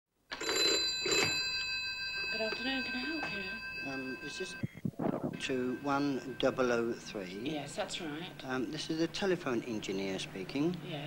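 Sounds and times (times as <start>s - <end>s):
telephone bell ringing: 0.3s - 4.8s, 5.4s - 8.4s.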